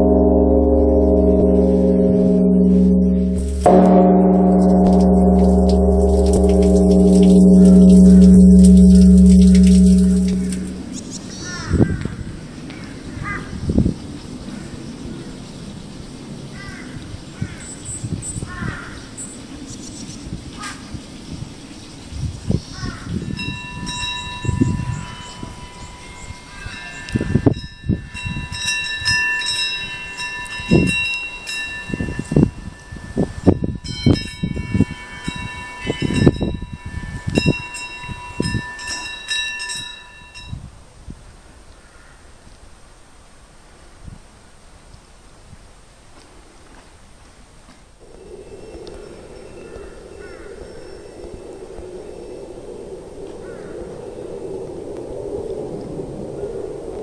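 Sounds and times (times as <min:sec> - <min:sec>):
wind buffeting microphone: 0:00.0 - 0:41.5, 0:48.0 - 0:57.0
small metal bells ringing: 0:23.4 - 0:40.6
crow cawing: 0:49.5 - 0:50.8, 0:53.4 - 0:53.9.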